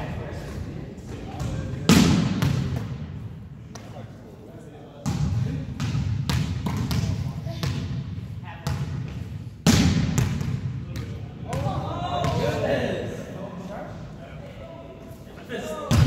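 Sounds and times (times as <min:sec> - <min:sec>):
players' voices: 0:00.0 - 0:16.0.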